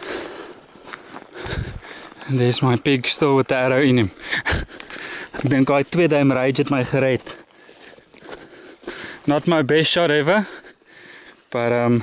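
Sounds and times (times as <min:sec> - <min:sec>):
footsteps through dry grass: 0:00.0 - 0:12.0
man's voice: 0:02.3 - 0:04.2, 0:05.4 - 0:07.4.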